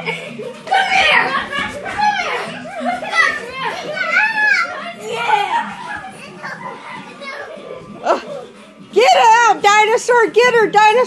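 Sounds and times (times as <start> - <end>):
faint child voices: 0.7 - 8.5.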